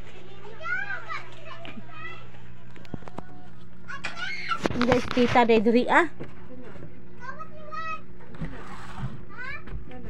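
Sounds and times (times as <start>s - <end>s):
children calling and squealing: 0.2s - 4.8s.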